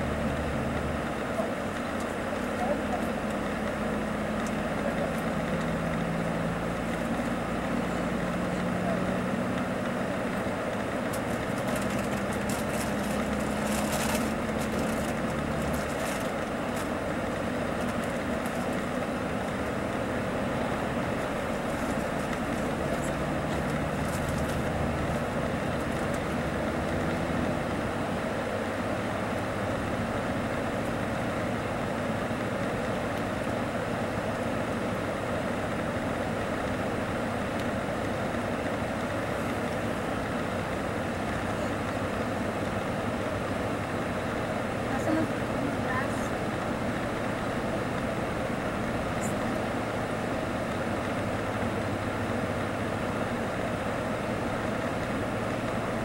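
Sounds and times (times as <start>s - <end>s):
bus engine hum: 0.0s - 56.0s
tyre and road noise: 0.0s - 56.0s.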